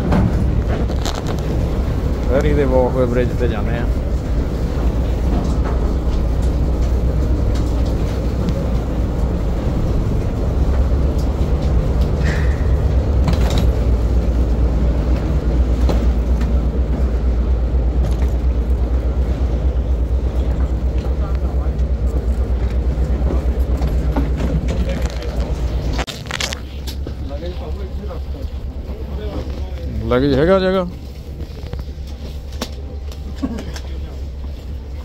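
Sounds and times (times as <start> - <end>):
ferry engines rumbling: 0.0 - 35.0
footsteps and luggage clicking: 0.0 - 35.0.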